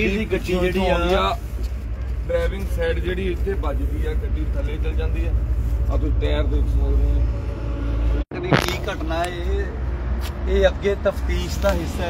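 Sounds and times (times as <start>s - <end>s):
low rumble: 1.5s - 10.0s
people talking: 2.3s - 5.3s, 5.9s - 7.2s, 8.3s - 9.8s.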